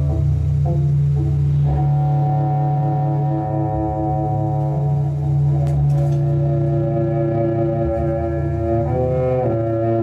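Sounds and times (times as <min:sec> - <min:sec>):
bowed cello low tone: 0:00.0 - 0:10.0.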